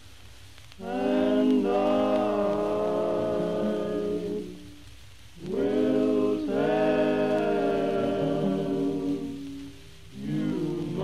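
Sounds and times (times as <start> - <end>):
male vocal quartet singing: 0.8 - 4.8, 5.4 - 11.0.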